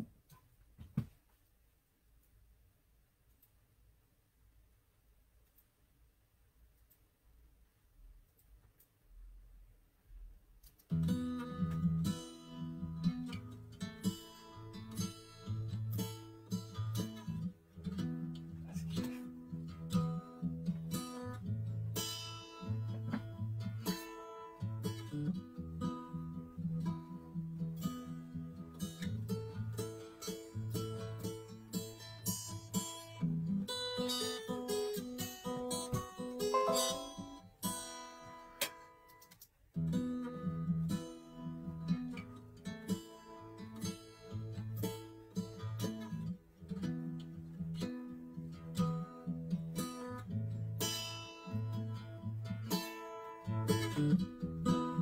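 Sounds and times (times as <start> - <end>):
guitar-led music: 36.6 - 37.6.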